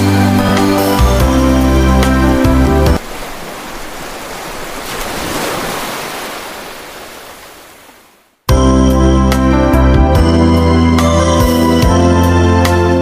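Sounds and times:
ocean surf wave washing in: 0:00.0 - 0:08.2.

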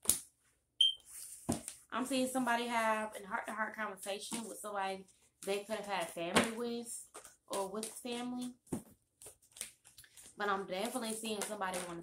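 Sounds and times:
high-pitched electronic beep: 0:00.8 - 0:01.0.

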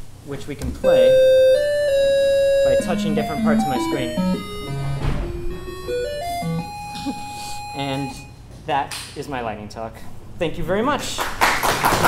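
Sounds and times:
synthesizer tones jumping pitch: 0:00.8 - 0:07.0.

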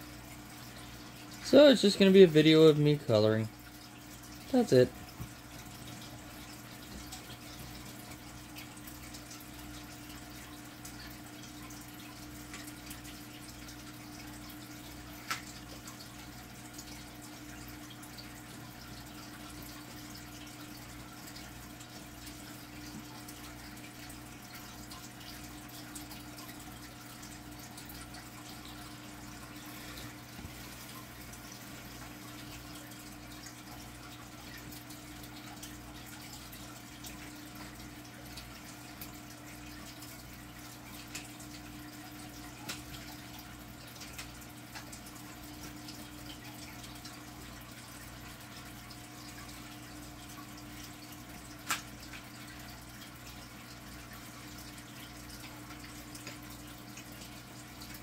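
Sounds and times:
aquarium water trickling and bubbling: 0:00.0 - 0:58.0.

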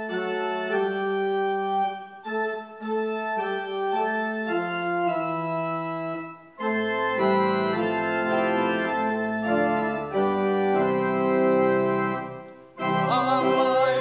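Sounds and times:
organ playing a hymn: 0:00.0 - 0:14.0.

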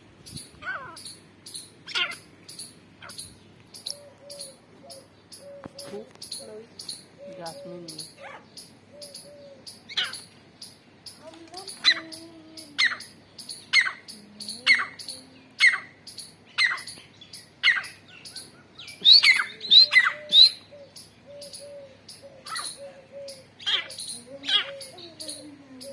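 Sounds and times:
francolins calling: 0:00.0 - 0:25.9.

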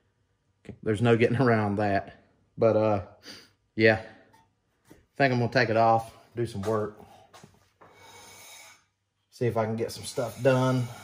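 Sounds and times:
man breathing in through nose: 0:07.1 - 0:08.9, 0:10.7 - 0:11.0.

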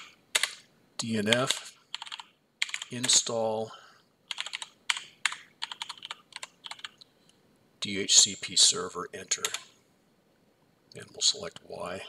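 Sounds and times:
computer keyboard keys clicking: 0:00.0 - 0:00.6, 0:01.3 - 0:03.2, 0:04.3 - 0:07.0, 0:09.4 - 0:09.6.

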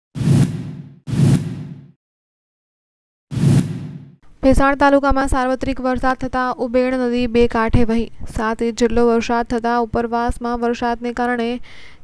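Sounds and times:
whoosh and deep hit: 0:00.2 - 0:02.0, 0:03.3 - 0:04.2.

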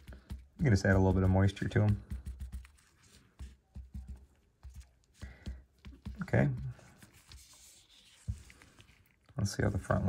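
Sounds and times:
cloth pad tapping on cardboard: 0:00.0 - 0:07.5.

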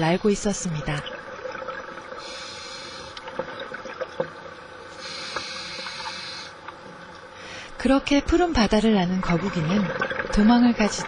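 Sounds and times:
underwater noise: 0:00.0 - 0:11.0
regulator breathing hiss: 0:02.2 - 0:03.2, 0:04.9 - 0:06.6
faint clicks: 0:03.0 - 0:04.4.

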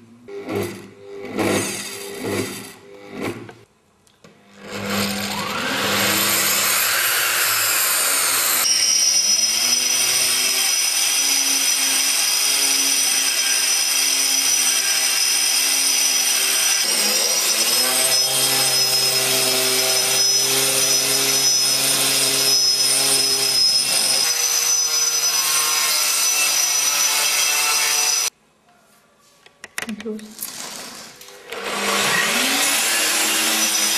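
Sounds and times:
concrete grinder whining: 0:00.3 - 0:03.6, 0:04.6 - 0:28.3, 0:30.4 - 0:33.9.

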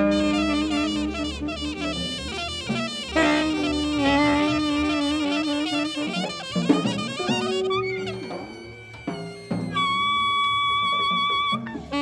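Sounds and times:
loud held horn note: 0:00.0 - 0:08.6
free jazz ensemble playing: 0:00.0 - 0:12.0.

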